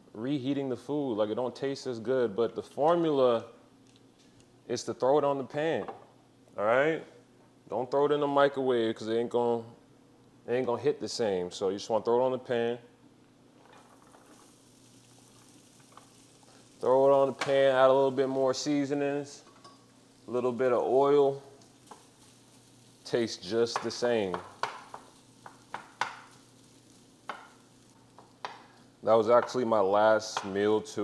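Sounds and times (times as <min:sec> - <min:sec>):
food sizzling in a frying pan: 0:13.5 - 0:31.0.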